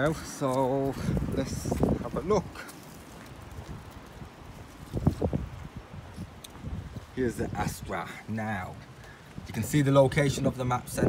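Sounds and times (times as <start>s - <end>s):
footsteps on outdoor ground: 0.0s - 11.0s.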